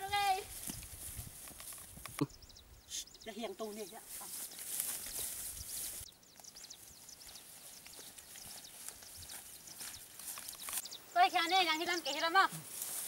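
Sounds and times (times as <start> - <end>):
grass rustling: 0.0 - 13.0
small birds chirping: 0.0 - 13.0.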